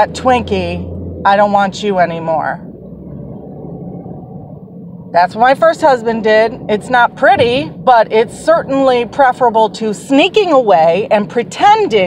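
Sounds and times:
car engine and road noise: 0.0s - 12.0s
faint steady hum: 0.0s - 12.0s.

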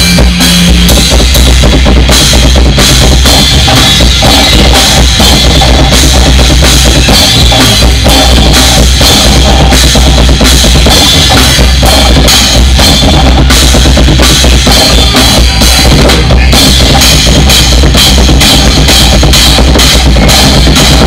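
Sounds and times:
cymbal crashes: 0.0s - 21.0s.

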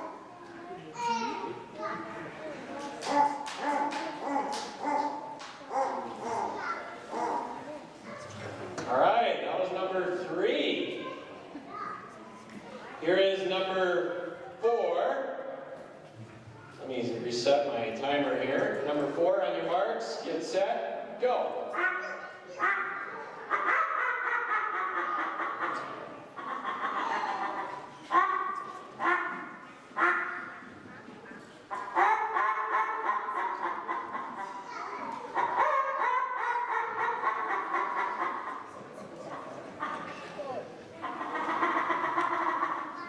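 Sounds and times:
game call imitating animal calls: 21.7s - 30.7s, 31.7s - 34.6s, 35.2s - 38.7s.

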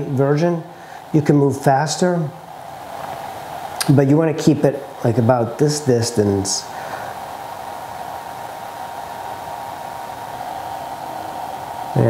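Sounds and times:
faint thin whine: 0.0s - 12.0s
fan whirring: 0.0s - 12.0s.

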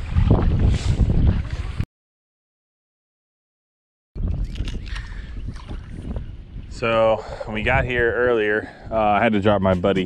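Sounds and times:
wind rumbling on microphone: 0.0s - 1.9s, 4.2s - 10.0s.

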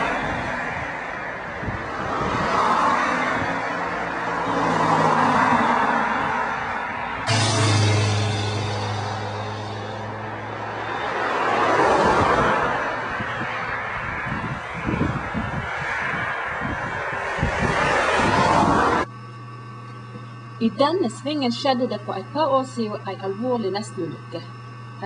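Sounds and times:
cars passing on a road: 0.0s - 19.1s.

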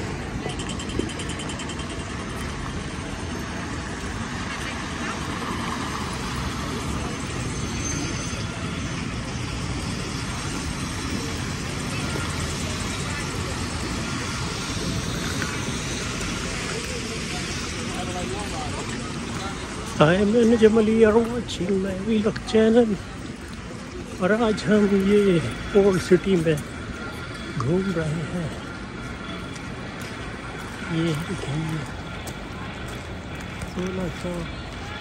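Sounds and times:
traffic on wet roads: 0.0s - 35.0s.

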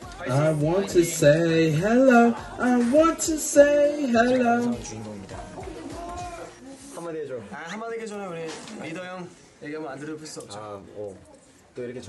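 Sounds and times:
quiet male voices talking: 0.0s - 12.0s.

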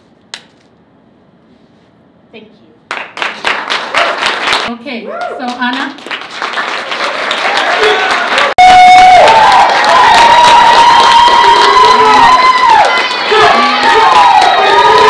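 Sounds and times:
audience cheering and whooping: 6.8s - 15.0s.

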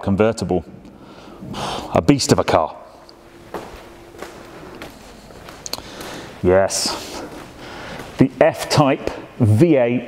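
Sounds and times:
footsteps on plastic tiles: 3.4s - 8.2s.

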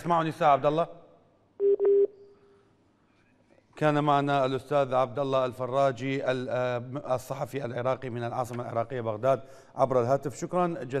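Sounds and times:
telephone line beeps: 1.6s - 2.1s.

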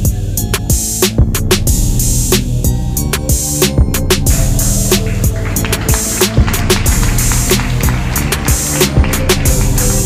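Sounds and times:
electronic music with deep bass drum: 0.0s - 10.0s.

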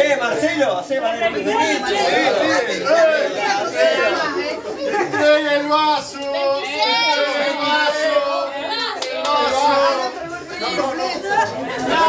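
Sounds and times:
overlapping group chatter: 0.0s - 12.0s.

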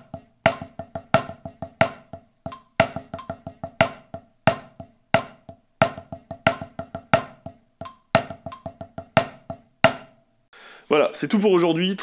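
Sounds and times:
drumsticks on practice pad: 0.0s - 10.2s.

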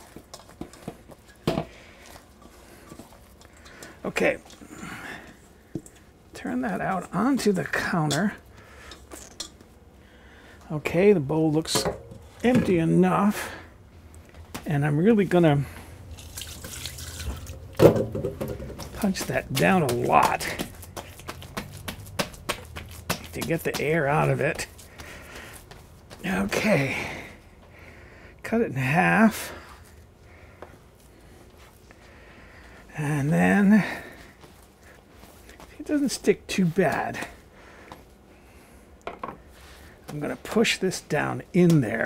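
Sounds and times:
dough handling clicks and rustles: 0.0s - 9.8s, 15.6s - 26.7s, 39.6s - 42.0s
hands slapping bread dough: 18.2s - 26.3s.

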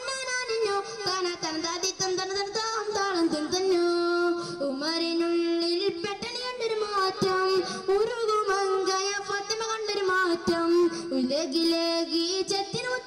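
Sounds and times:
boy singing into microphone: 0.0s - 13.0s.

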